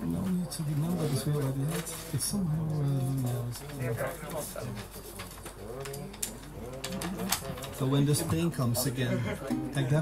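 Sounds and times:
paper rustling: 0.3s - 8.0s.

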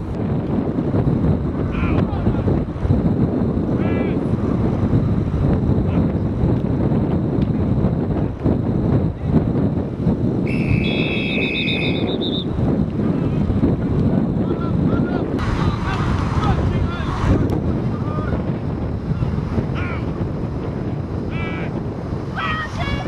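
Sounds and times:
wind rumbling on microphone: 0.0s - 23.0s
referee whistles: 10.4s - 12.5s.

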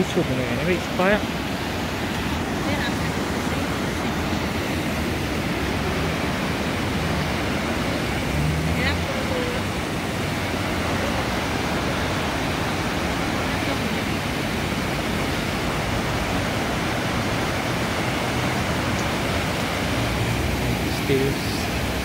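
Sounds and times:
river rushing over a weir: 0.0s - 22.0s.

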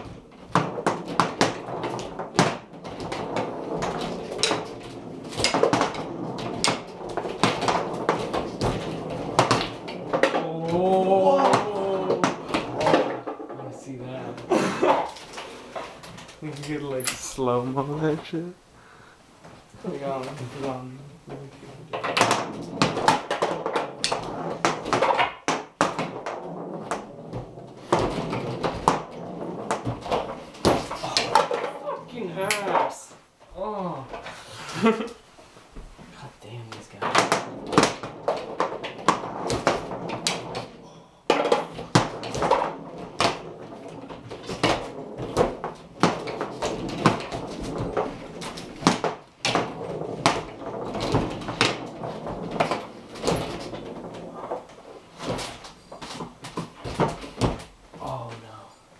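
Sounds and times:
metal rods slammed and spun: 0.0s - 13.8s
foosball ball clicks and knocks: 0.0s - 16.4s, 21.3s - 33.0s, 36.7s - 58.1s.

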